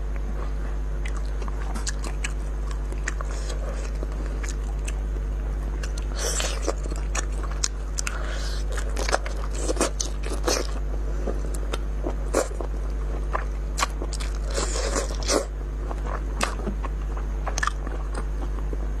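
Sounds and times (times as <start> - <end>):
low electrical hum: 0.0 - 19.0
person biting and chewing food: 1.0 - 18.9.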